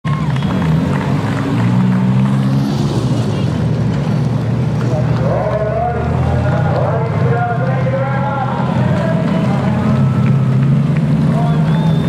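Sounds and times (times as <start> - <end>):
race car engines running hard: 0.0 - 12.0.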